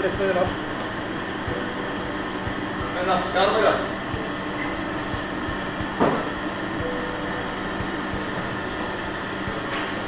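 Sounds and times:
restaurant room hum: 0.0 - 10.0.

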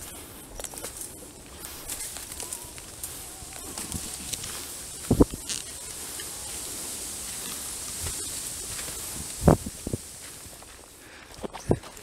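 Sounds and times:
footsteps on dry leaves: 0.0 - 12.0
high-pitched hiss: 0.0 - 12.0.

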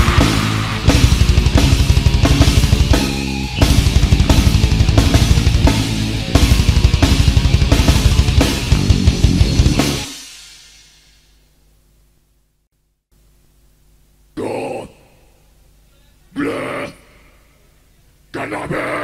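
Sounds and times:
metal band playing: 0.0 - 10.4.

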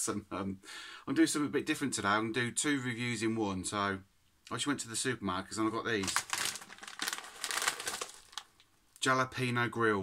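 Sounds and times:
plastic crisp packet crinkling: 5.9 - 8.7.

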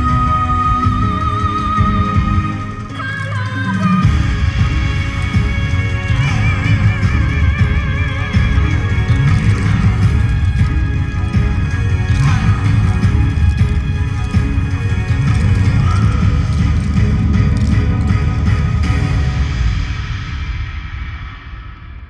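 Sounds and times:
dance music with heavy beat: 0.0 - 20.3.

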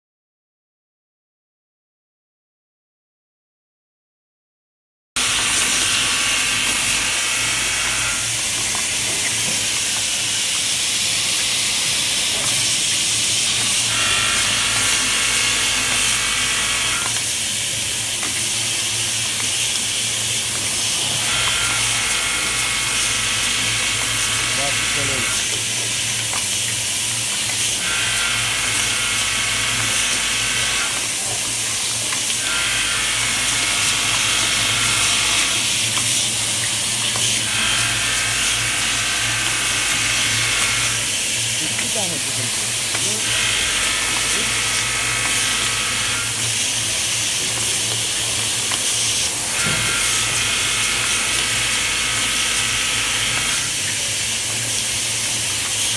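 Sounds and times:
motor hum: 5.2 - 55.8
capping machine running: 5.2 - 55.9.

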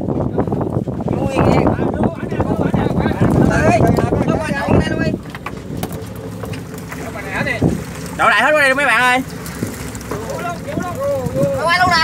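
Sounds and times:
boat engine running: 0.0 - 12.0
men calling out: 10.0 - 12.0.

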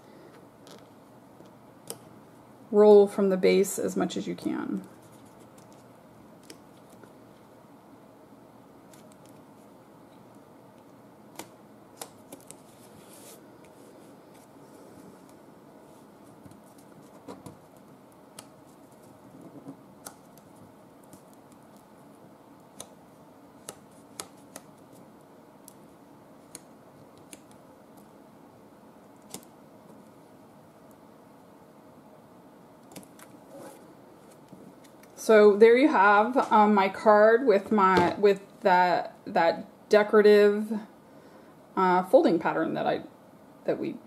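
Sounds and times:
low room hum: 0.0 - 44.0.

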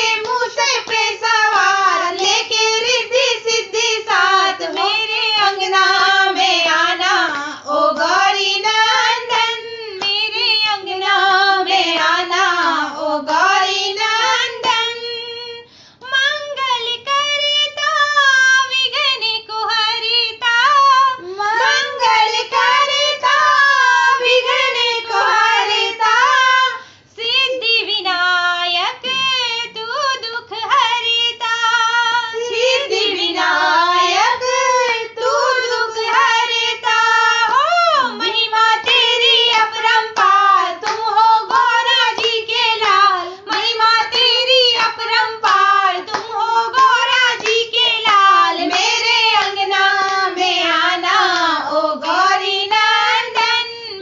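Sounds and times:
women singing devotional song: 0.0 - 54.0.

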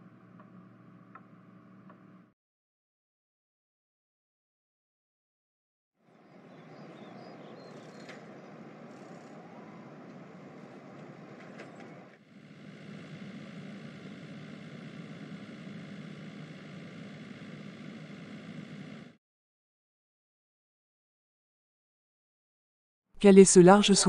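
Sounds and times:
distant traffic: 6.0 - 17.6
car engine and road noise inside: 6.4 - 12.2.

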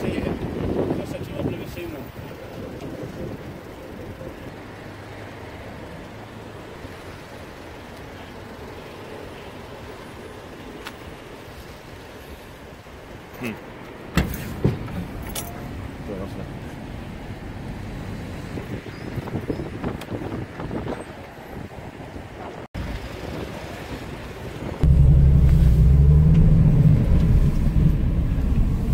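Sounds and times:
low outdoor rumble: 22.8 - 28.9.

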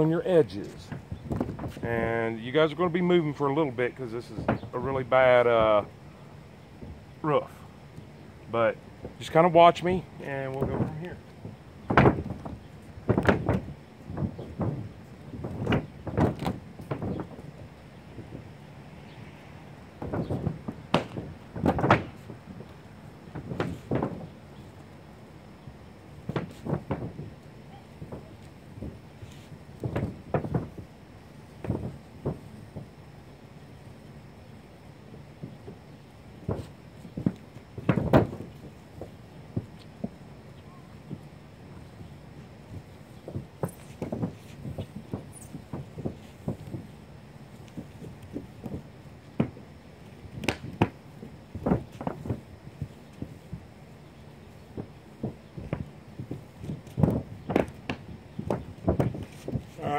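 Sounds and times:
thumps and knocks on roof: 4.4 - 4.7, 10.6 - 17.5, 20.0 - 22.7, 23.3 - 24.4, 26.2 - 27.4, 28.0 - 30.9, 31.6 - 32.9, 36.4 - 40.2, 42.7 - 47.0, 47.6 - 53.6, 54.5 - 59.9.

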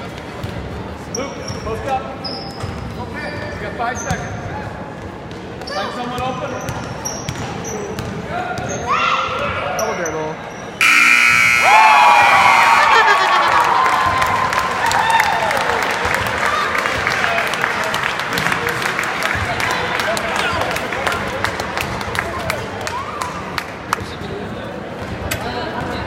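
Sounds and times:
scoreboard buzzer: 10.8 - 13.5
crowd cheering and clapping: 10.8 - 19.9.

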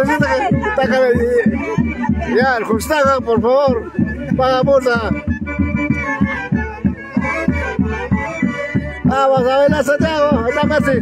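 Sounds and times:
quick steady drum beat: 0.0 - 11.0
wind instruments holding notes: 0.0 - 11.0.

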